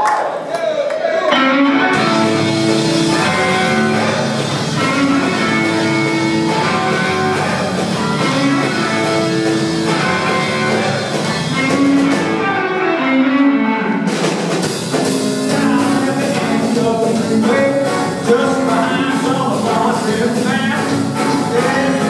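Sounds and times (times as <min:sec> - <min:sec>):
drums: 0:01.3 - 0:22.0
electric lead guitar: 0:01.3 - 0:22.0
rhythm guitar: 0:01.3 - 0:22.0
electric bass: 0:01.4 - 0:22.0.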